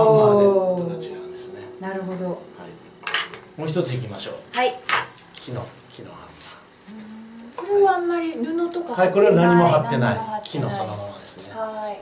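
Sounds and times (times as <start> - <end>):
dulcimer strings ringing: 0.0 - 5.0
wooden hammers clattering: 3.0 - 3.6.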